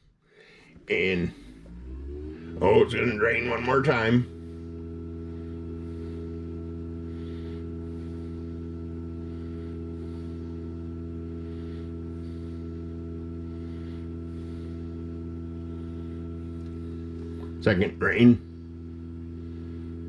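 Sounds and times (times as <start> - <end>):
drain pump humming: 0.3 - 20.0.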